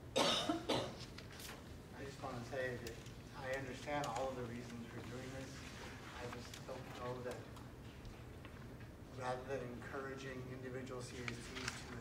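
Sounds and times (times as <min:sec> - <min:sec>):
person coughing: 0:00.1 - 0:01.0.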